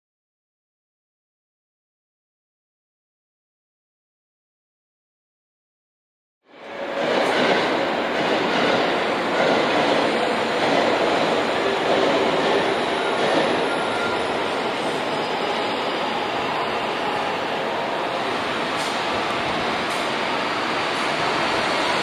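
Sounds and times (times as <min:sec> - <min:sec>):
train running rush and rumble: 0:06.5 - 0:22.0.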